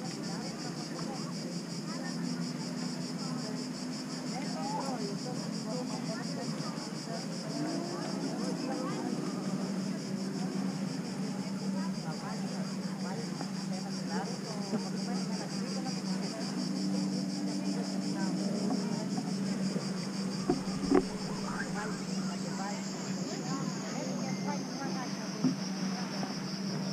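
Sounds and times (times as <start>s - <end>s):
cicadas buzzing: 0.0s - 26.9s
faint voices of people: 0.0s - 26.9s
low steady hum: 19.9s - 24.5s
short knocks: 20.5s - 21.8s.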